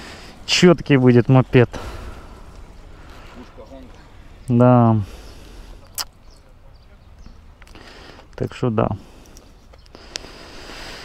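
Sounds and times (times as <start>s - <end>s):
low background rumble: 0.0s - 7.6s.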